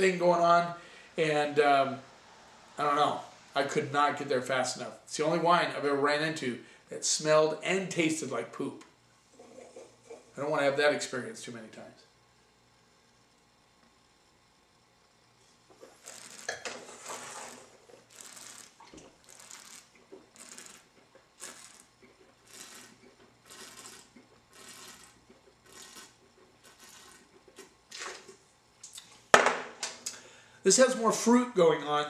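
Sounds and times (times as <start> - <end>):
wine slurped through the mouth: 15.9 - 28.2.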